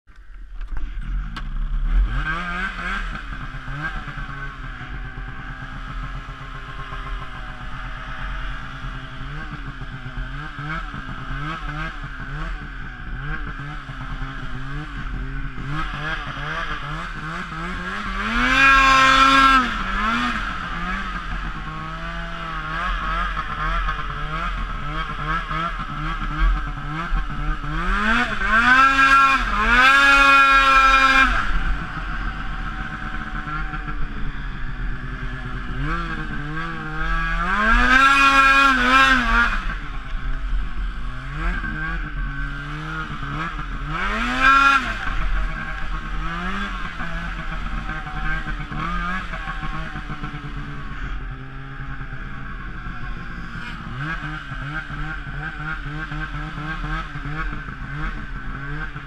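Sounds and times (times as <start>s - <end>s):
snowmobile engine revving: 0.8s - 59.0s.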